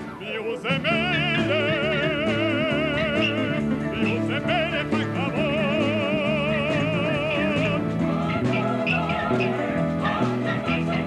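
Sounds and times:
man singing with vibrato: 0:00.1 - 0:07.9.

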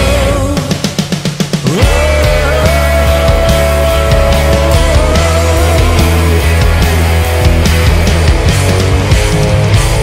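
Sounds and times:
rock band playing: 0:00.0 - 0:10.0
wavering lead guitar line: 0:00.0 - 0:10.0.

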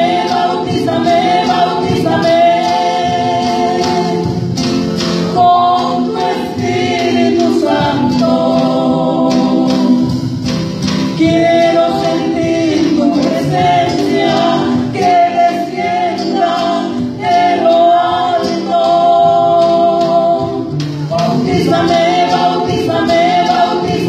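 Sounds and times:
band with drum kit: 0:00.0 - 0:24.0
singers holding long notes: 0:00.0 - 0:24.0.

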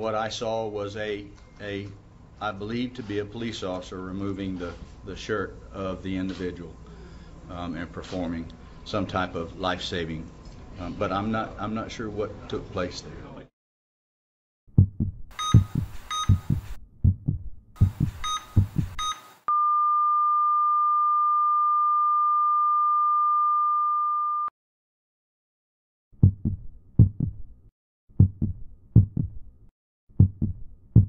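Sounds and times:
heartbeat thumps: 0:14.7 - 0:19.1, 0:26.2 - 0:27.6, 0:28.2 - 0:29.5, 0:30.1 - 0:31.0
heart monitor beeps: 0:14.8 - 0:19.8.

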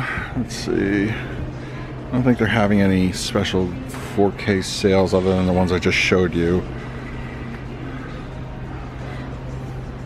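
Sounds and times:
store ambience hum and hiss: 0:00.0 - 0:10.0.

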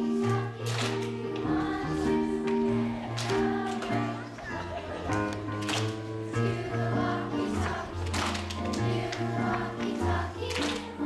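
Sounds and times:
children singing: 0:00.0 - 0:05.3, 0:06.1 - 0:11.0.

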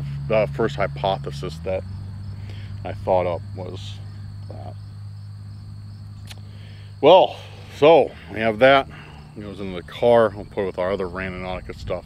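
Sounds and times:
constant low hum: 0:00.0 - 0:12.0
insect chorus: 0:00.0 - 0:12.0
sharp click: 0:06.2 - 0:06.5.

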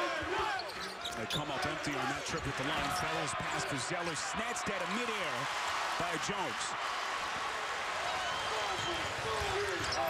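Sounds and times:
arena crowd noise: 0:00.0 - 0:10.0
sneaker squeaks: 0:00.5 - 0:01.8.

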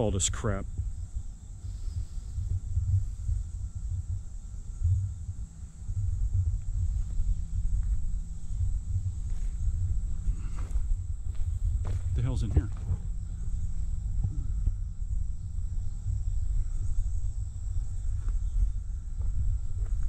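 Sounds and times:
cicadas buzzing: 0:00.0 - 0:20.0
wind rumble on microphone: 0:00.0 - 0:20.0.

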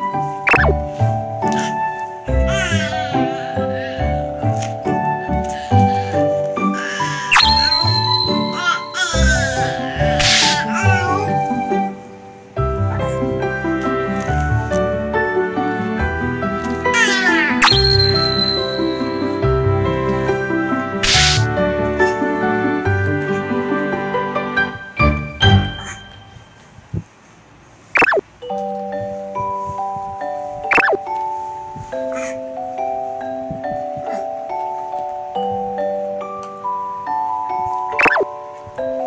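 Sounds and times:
soft instrumental music: 0:00.0 - 0:27.2, 0:28.0 - 0:39.0
pitch swoop sound effect: 0:00.5 - 0:00.8, 0:30.7 - 0:31.0.

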